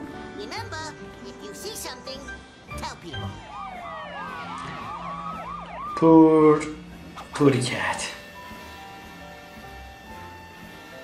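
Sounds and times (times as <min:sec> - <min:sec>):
cartoon siren warbling: 0:03.1 - 0:09.0.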